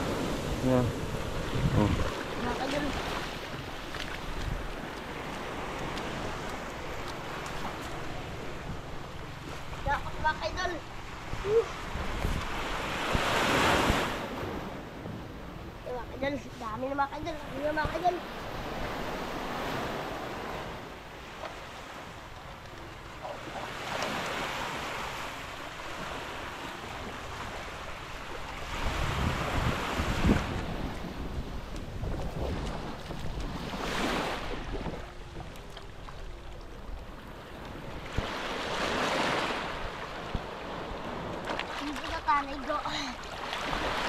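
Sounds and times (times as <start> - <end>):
wind rumbling on microphone: 0.0 - 20.9, 25.3 - 44.0
small waves washing onto sand: 0.0 - 44.0.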